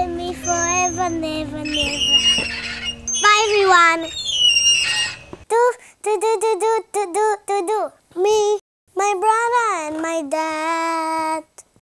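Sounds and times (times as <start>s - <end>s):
child singing: 0.0s - 2.5s, 5.5s - 11.7s.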